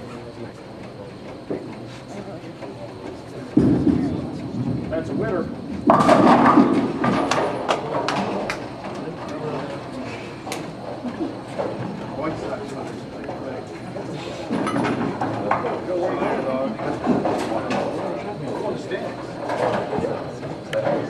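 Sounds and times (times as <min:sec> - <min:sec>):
bowling pins clattering: 0:03.6 - 0:08.5
bowling ball rolling on lane: 0:05.8 - 0:08.4.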